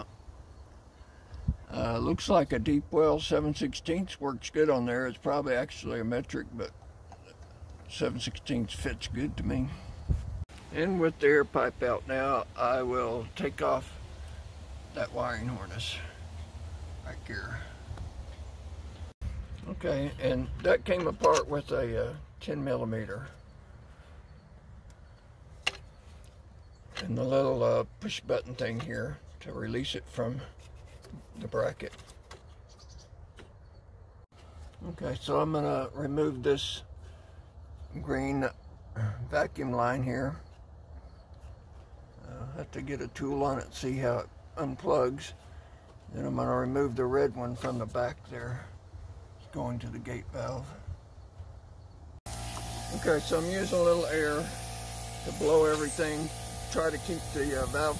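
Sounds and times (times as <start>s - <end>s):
compressed air hissing: 52.3s - 57.9s.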